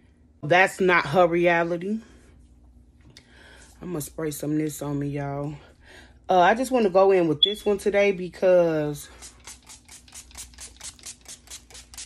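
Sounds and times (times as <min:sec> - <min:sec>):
spray bottle hissing spritzes: 0:09.2 - 0:12.0.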